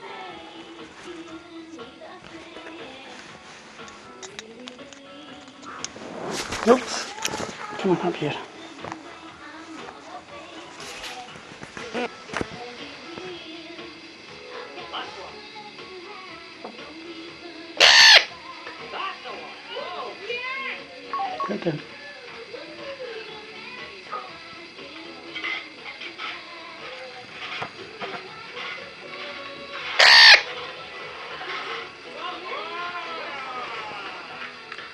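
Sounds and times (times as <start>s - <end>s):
parrot squawk: 17.8s - 18.3s, 29.8s - 30.6s.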